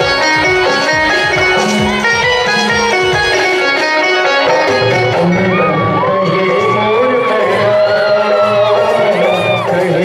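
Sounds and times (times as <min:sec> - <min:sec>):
plucked string melody: 0:00.0 - 0:06.9
hand drums: 0:00.0 - 0:10.0.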